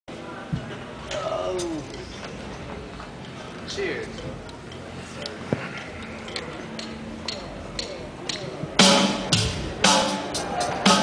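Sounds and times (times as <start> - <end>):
murmur of voices: 0.1 - 11.0
drumstick tempo clicks: 4.0 - 11.0.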